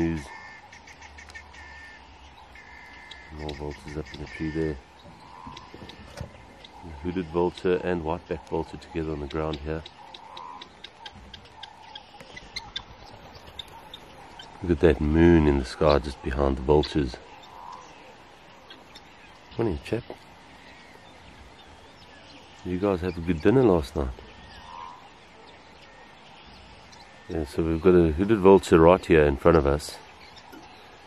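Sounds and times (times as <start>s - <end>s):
faint animal call: 0.0s - 7.4s, 24.5s - 25.2s
birds chirping: 0.0s - 31.0s.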